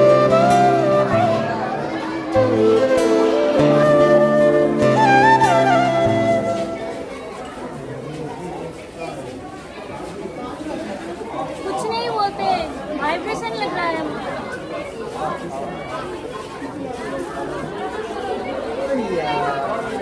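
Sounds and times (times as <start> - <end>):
background chatter: 0.0 - 20.0.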